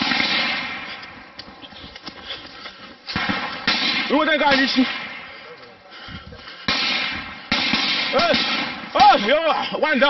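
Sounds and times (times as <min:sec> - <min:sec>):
faint distant gunshot cracks: 0:00.0 - 0:00.9, 0:03.1 - 0:05.4, 0:06.7 - 0:08.9
loud gunshots: 0:00.0 - 0:00.9, 0:03.1 - 0:05.4, 0:06.6 - 0:09.5.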